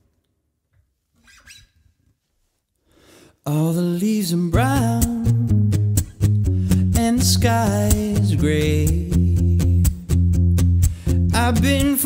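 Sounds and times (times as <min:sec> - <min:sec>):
fingers squeaking on guitar strings: 0:01.2 - 0:02.0
guitar chords: 0:04.4 - 0:12.0.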